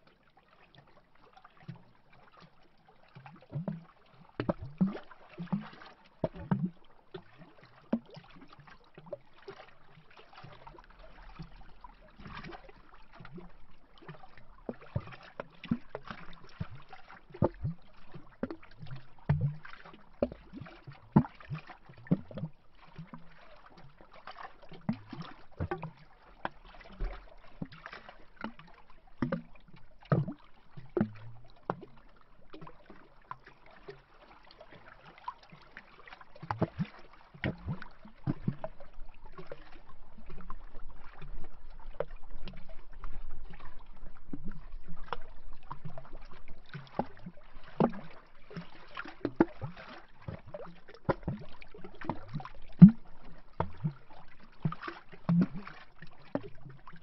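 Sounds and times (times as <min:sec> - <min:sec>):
waves lapping against tree trunk: 0:19.6 - 0:41.2, 0:45.0 - 0:56.4.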